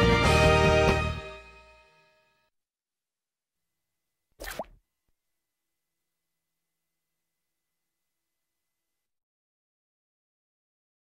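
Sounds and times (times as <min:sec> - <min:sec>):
cartoon pop with upward pitch glide: 0:04.4 - 0:04.8.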